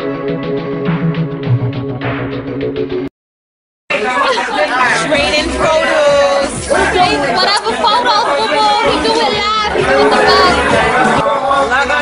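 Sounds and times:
people talking and chattering: 0:03.9 - 0:12.0.

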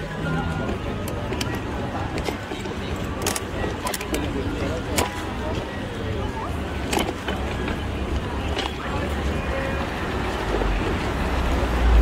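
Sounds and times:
faint crowd noise: 0:00.0 - 0:12.0
low city rumble: 0:00.0 - 0:12.0.

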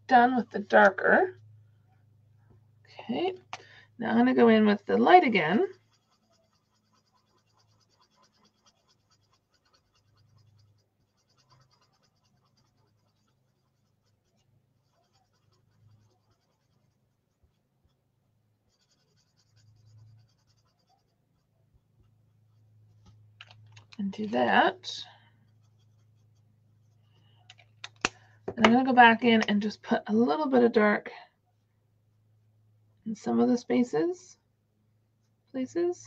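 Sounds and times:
low steady hum: 0:00.0 - 0:36.0
marker tip scratching on card: 0:05.6 - 0:18.0, 0:18.7 - 0:21.5, 0:25.5 - 0:27.0.

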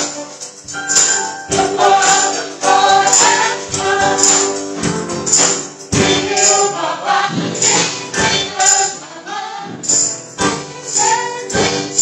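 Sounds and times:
jingling percussion hits: 0:00.0 - 0:09.1, 0:09.7 - 0:12.0
voices singing into microphones: 0:00.1 - 0:04.9, 0:05.9 - 0:12.0.

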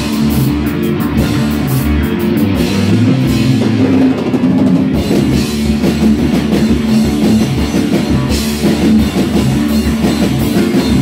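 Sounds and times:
drum kit with cymbals: 0:00.0 - 0:11.0
electric bass: 0:00.0 - 0:11.0
electric guitars: 0:00.0 - 0:11.0.

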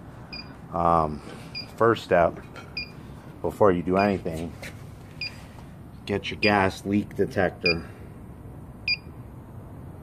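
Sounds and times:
gas detector beeping: 0:00.3 - 0:00.6, 0:01.5 - 0:01.8, 0:08.9 - 0:09.1.

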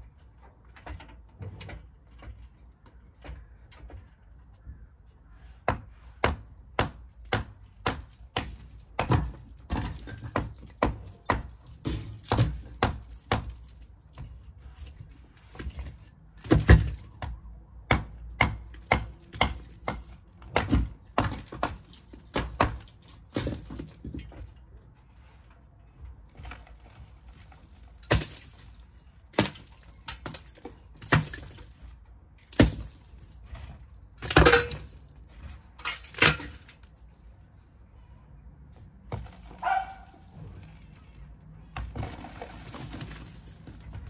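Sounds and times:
hammer striking bricks: 0:05.6 - 0:24.5, 0:27.4 - 0:36.8
crumbling brick falling: 0:05.7 - 0:24.6, 0:26.2 - 0:37.0, 0:41.6 - 0:44.0.

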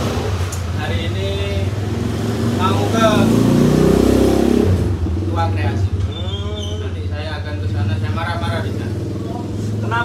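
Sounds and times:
motorcycle engine accelerating: 0:00.0 - 0:05.8.

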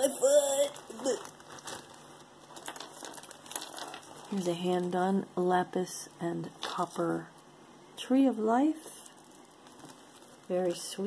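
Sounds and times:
jewelry rustling on wood: 0:01.2 - 0:05.1, 0:08.8 - 0:11.0.

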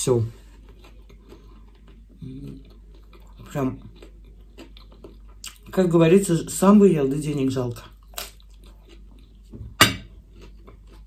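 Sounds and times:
person chewing: 0:00.0 - 0:06.0, 0:07.7 - 0:11.0.

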